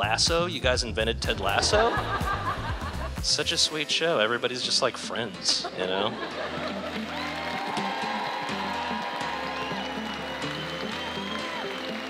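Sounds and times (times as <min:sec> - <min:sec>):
music with bass line: 0:00.0 - 0:03.7
audience applause: 0:06.5 - 0:12.0.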